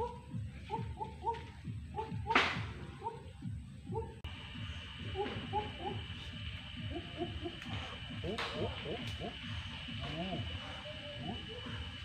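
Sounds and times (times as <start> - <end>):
rapid chirping calls: 4.5 - 11.8.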